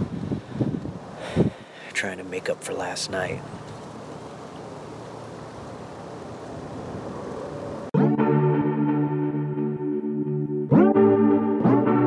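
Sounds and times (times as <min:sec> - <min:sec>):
wind hissing: 0:00.0 - 0:02.0, 0:03.4 - 0:07.9.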